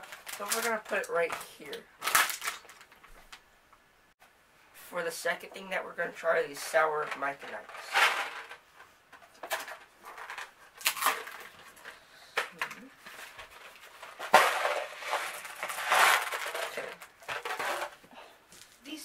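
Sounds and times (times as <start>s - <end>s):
cardboard cracking: 0.0s - 3.0s, 10.2s - 11.6s, 13.0s - 18.0s
candies rattling onto paper: 0.0s - 3.1s, 9.4s - 18.0s.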